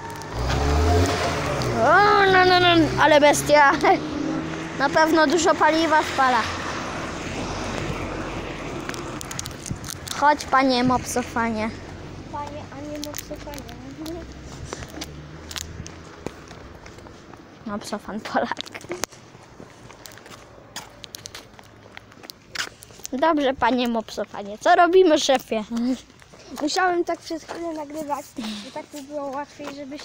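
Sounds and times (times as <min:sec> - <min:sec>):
large vehicle passing: 0:00.0 - 0:17.2
road noise: 0:00.0 - 0:30.0
footsteps on concrete: 0:03.6 - 0:30.0.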